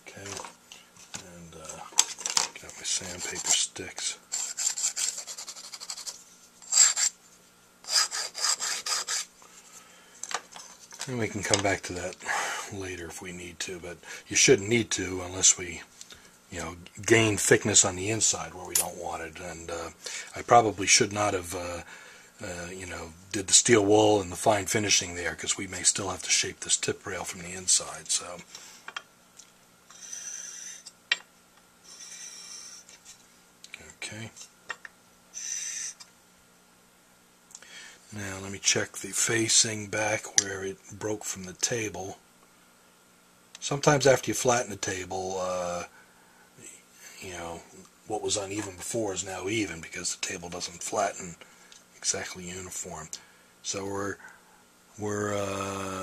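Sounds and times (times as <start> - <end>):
sandpaper rubbing metal: 4.3 - 7.2, 7.9 - 9.3, 29.9 - 30.9, 31.9 - 33.0.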